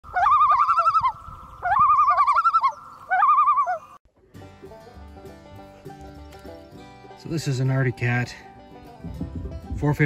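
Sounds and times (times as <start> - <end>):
warbling animal call: 0.0 - 4.0.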